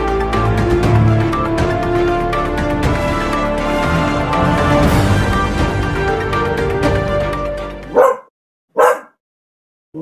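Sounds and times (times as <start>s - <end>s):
dog barking: 7.9s - 9.2s.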